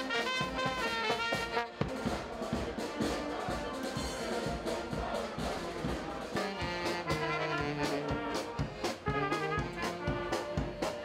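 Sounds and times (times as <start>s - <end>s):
brass band playing: 0.0s - 11.0s
steady drum beat: 0.0s - 11.0s.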